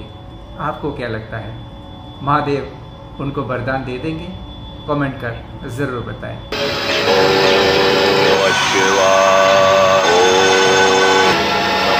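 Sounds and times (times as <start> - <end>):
man chanting long held notes: 6.6 - 11.9.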